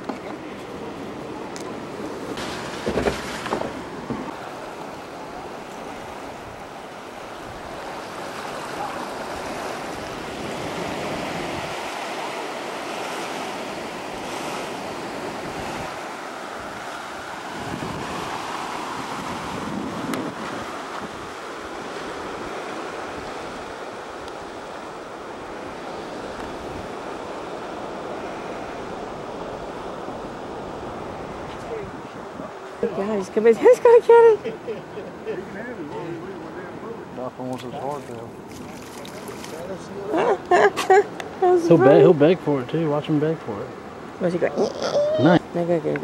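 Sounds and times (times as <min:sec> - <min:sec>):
wind rumbling on microphone: 0:00.0 - 0:34.3
ocean surf washing in: 0:00.0 - 0:46.0.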